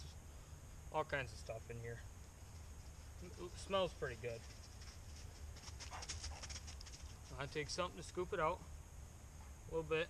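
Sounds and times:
faint rustling: 1.9s - 7.6s.

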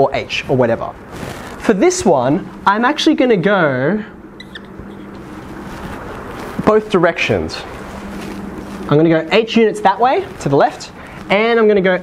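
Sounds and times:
room noise with low hum: 0.0s - 12.0s
whiteboard marker squeaking: 4.4s - 5.6s.

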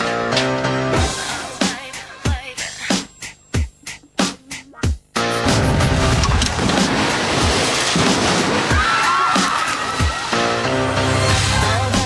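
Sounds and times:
music with heavy beat: 0.0s - 6.2s.

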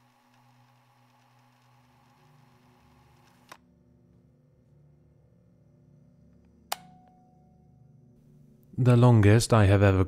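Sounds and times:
sharp click: 6.7s - 7.2s.

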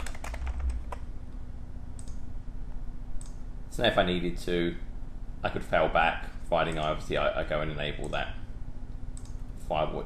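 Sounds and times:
computer keyboard typing: 0.0s - 1.0s.

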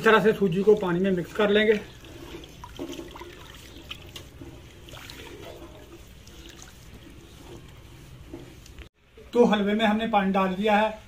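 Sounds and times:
spoon stirring watery mixture: 0.1s - 8.9s.

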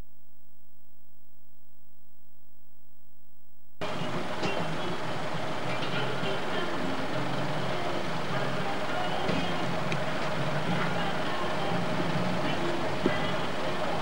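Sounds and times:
truck engine running: 3.8s - 14.0s.

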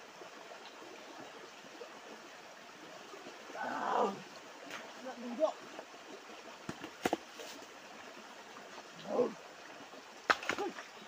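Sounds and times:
stream running over stones: 0.0s - 11.0s
sharp knocks of stones: 6.6s - 7.5s, 10.2s - 10.9s.

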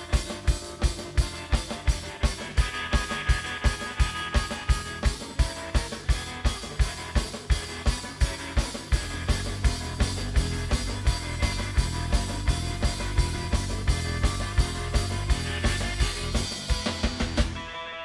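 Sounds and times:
drum kit beat: 0.0s - 17.8s
bass guitar: 0.0s - 18.0s
electric guitar: 0.0s - 18.0s.

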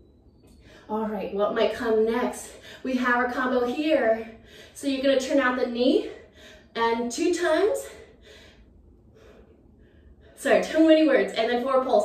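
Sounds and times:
woman breathing softly: 4.3s - 4.8s, 6.2s - 6.7s, 7.9s - 10.4s.

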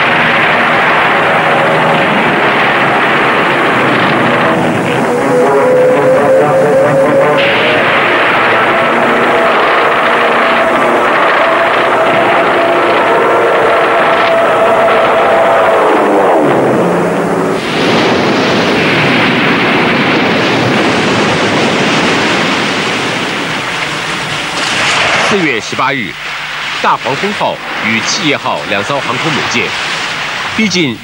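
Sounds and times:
plane passing by: 0.0s - 30.1s
aircraft engines droning: 0.0s - 31.0s
dense rushing roar: 0.0s - 31.0s.

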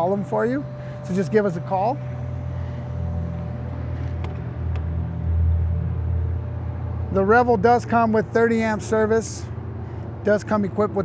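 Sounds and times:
faint constant hum: 0.0s - 11.0s
low steady rumble: 0.0s - 11.0s.

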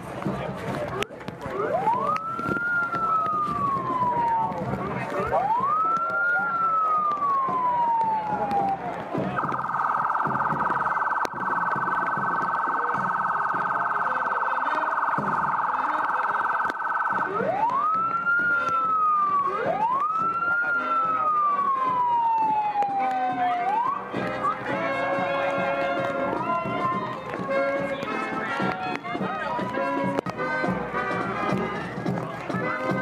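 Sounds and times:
electronic vehicle siren: 1.4s - 31.0s.

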